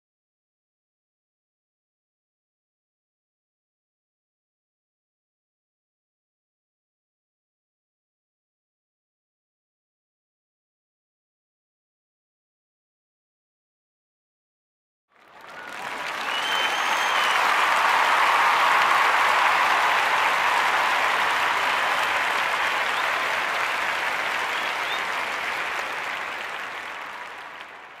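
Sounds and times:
audience applause: 15.2 - 28.0
whistle: 15.6 - 17.7, 24.4 - 25.3.

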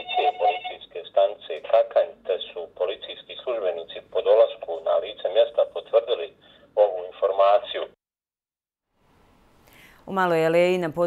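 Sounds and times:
man speaking over telephone: 0.0 - 8.0.

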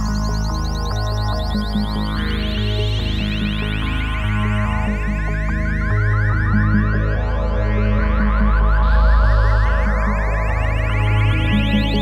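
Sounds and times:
rising synthesizer chirps: 0.0 - 7.1, 10.0 - 12.0
pulsing synth bass line: 0.0 - 12.0
steady low drone: 0.0 - 12.0.

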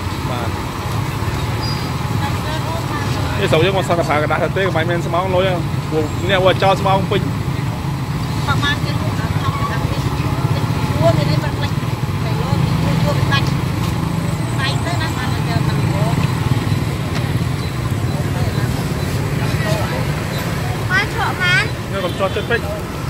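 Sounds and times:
street traffic hum: 0.0 - 23.0.

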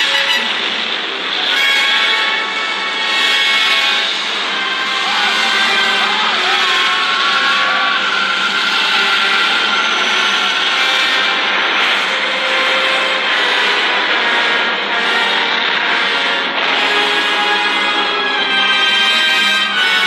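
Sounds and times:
rush of sound effects: 0.0 - 18.3
film music: 0.0 - 20.0.

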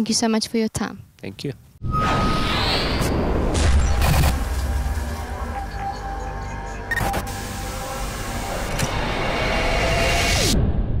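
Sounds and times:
sudden musical hit: 1.8 - 7.9.

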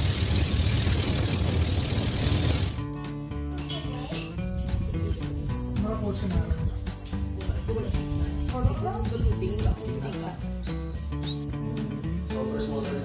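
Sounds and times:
background music: 2.8 - 13.0
high-pitched insect drone: 3.5 - 11.7.

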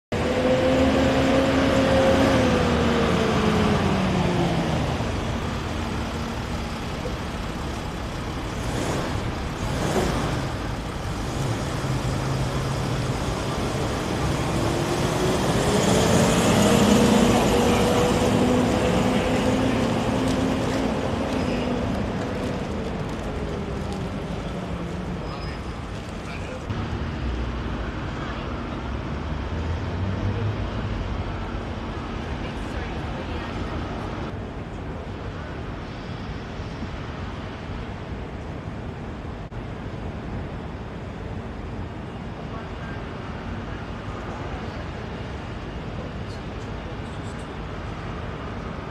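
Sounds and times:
vehicles driving past: 0.1 - 48.9.

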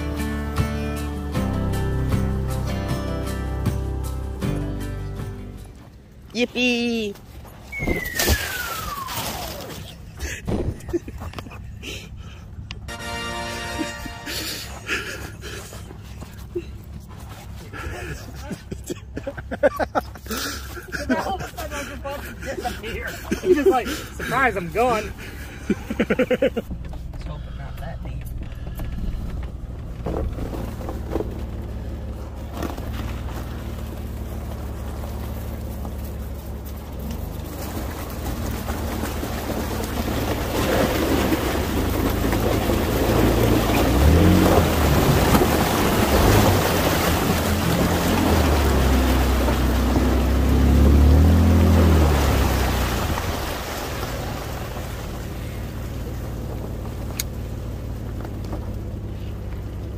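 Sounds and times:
water splashing: 7.7 - 10.7, 30.2 - 58.4
car engine revving: 21.8 - 59.9.

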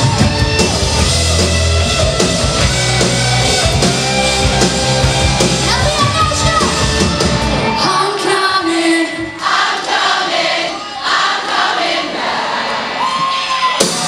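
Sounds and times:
live rock band playing: 0.0 - 8.1
crowd voices: 0.0 - 14.0
woman singing lead vocal: 7.8 - 9.4.

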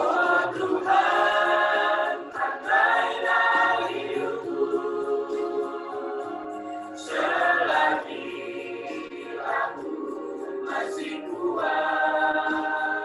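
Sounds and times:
mixed choir singing in harmony: 0.0 - 13.0.

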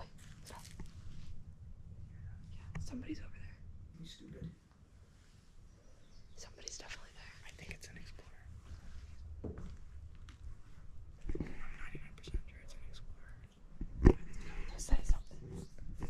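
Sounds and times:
people whispering: 0.0 - 0.8, 2.1 - 4.6, 6.4 - 8.6, 11.2 - 16.0.

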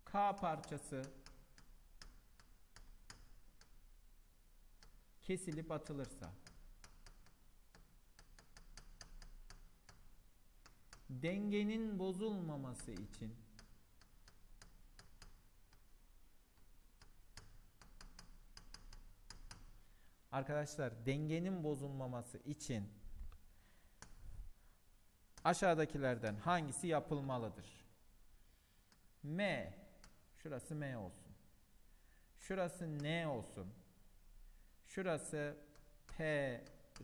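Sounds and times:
stylus tapping writing tablet: 4.8 - 11.2, 12.7 - 16.0, 16.6 - 19.8.

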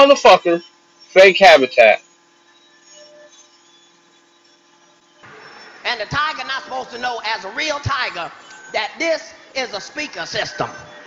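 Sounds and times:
room noise hiss: 0.0 - 3.6, 4.7 - 11.0
faint steady hum: 0.0 - 11.0.

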